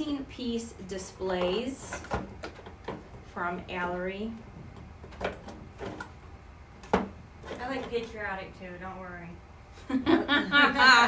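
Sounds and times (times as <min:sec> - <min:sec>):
light knocks and scrapes: 0:06.9 - 0:08.2.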